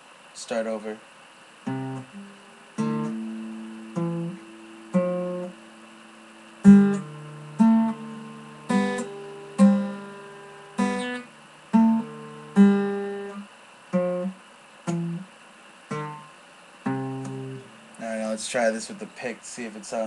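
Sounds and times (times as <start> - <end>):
guitar plucked slowly: 1.6 - 18.2.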